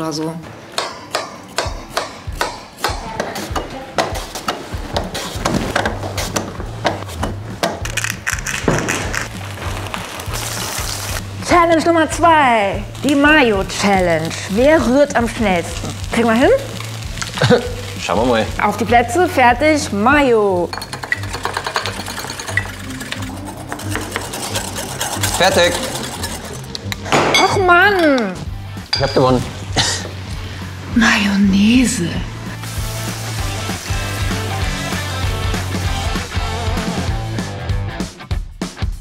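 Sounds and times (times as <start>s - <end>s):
utensils clicking in bowls: 7.6s - 9.3s, 20.7s - 27.1s
vegetable rasping across slicer blade: 23.2s - 26.9s
background music with bass beat: 32.3s - 39.0s.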